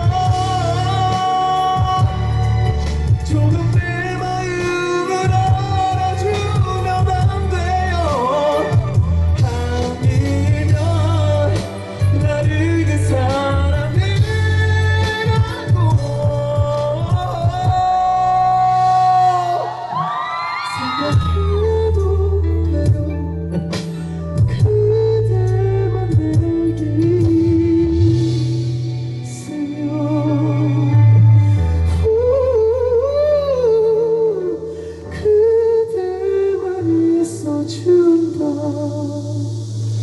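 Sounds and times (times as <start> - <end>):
live band playing: 0.0 - 40.0
man singing a slow ballad: 0.0 - 40.0
man singing a high note: 3.2 - 20.1
audience screaming and cheering: 18.2 - 22.2.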